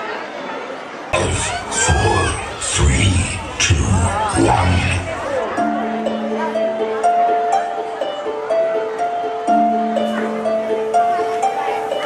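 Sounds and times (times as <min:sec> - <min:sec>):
dance music with heavy bass: 0:01.2 - 0:05.4
audience shouting and cheering: 0:01.2 - 0:05.5.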